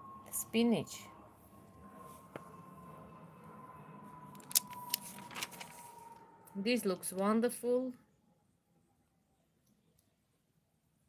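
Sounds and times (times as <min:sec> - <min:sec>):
faint steady high tone: 0:00.0 - 0:10.1
magazine pages rustling: 0:04.4 - 0:06.2.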